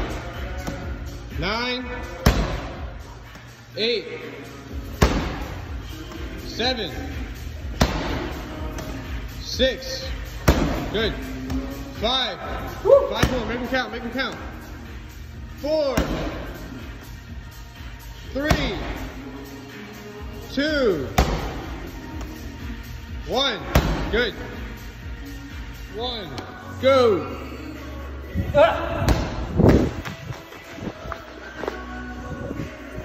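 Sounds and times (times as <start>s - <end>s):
background music: 0.0s - 33.0s
medicine ball thud on rubber floor: 2.2s - 2.8s, 4.9s - 6.2s, 7.7s - 8.9s, 10.3s - 11.8s, 21.1s - 22.3s, 23.6s - 24.2s, 29.0s - 30.2s.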